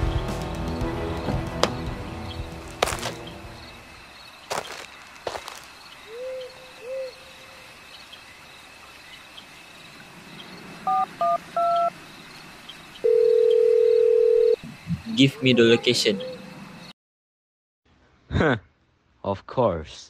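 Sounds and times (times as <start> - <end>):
faint night insects: 0.7 - 16.9
owl hoots: 6.0 - 7.6
phone keypad beeps: 10.9 - 11.9
steady phone tone: 10.9 - 11.9, 13.0 - 14.6.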